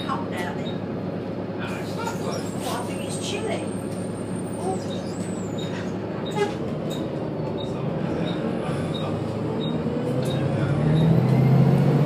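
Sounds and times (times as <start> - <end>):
bus diesel engine idling: 0.0 - 12.0.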